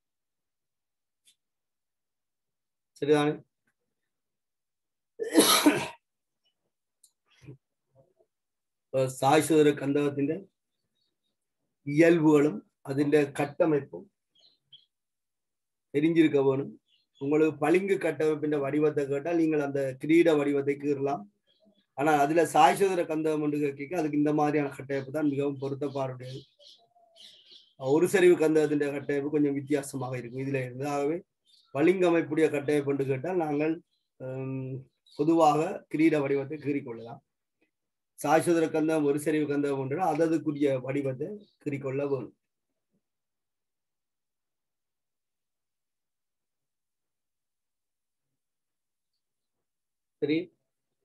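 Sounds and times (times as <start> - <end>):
person coughing: 5.2 - 6.1
man speaking: 9.0 - 10.4, 22.0 - 26.4, 27.8 - 31.2, 31.8 - 37.2, 38.2 - 42.3, 50.2 - 50.5
faint bird chirps: 14.3 - 15.0, 16.7 - 17.4, 21.2 - 22.2, 24.0 - 32.9.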